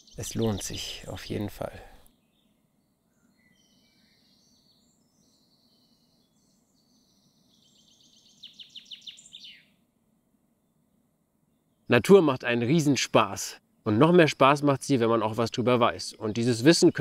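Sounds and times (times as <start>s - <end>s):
faint birdsong: 0.0s - 17.0s.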